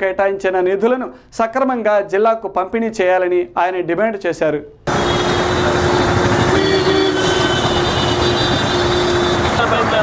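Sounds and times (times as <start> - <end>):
traffic: 4.8 - 10.0.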